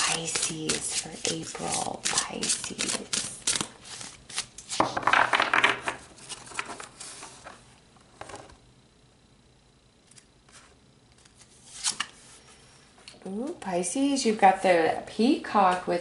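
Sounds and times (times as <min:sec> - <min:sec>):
card rustle: 0:00.0 - 0:05.0, 0:10.1 - 0:12.2
cards being shuffled: 0:00.0 - 0:05.3, 0:10.1 - 0:12.2.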